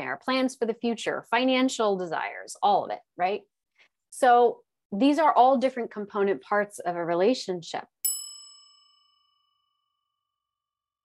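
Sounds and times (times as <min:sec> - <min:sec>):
bell-like chime: 0:08.0 - 0:10.3.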